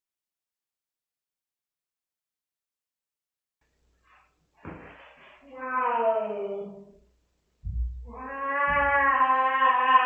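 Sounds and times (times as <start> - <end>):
cat yowling: 8.1 - 10.0.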